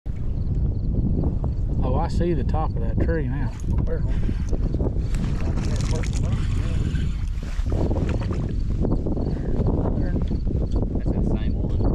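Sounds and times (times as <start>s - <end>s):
wind rumbling on microphone: 0.1s - 11.9s
fishing reel cranking: 4.1s - 7.8s.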